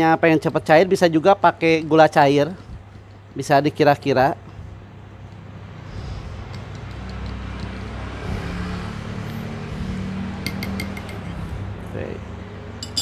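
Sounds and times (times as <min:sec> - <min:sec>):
spoon clinking against glass: 0:10.5 - 0:11.2, 0:12.8 - 0:13.0.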